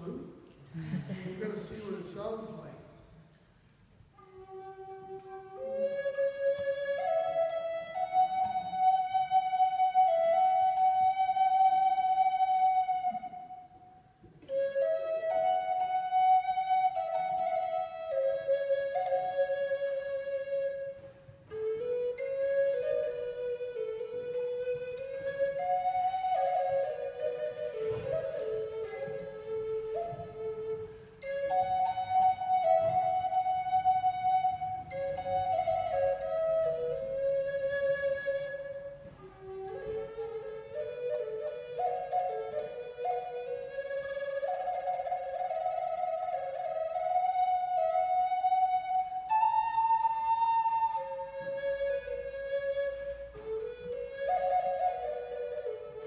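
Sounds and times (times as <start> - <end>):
wooden flute melody: 1.5 - 56.0.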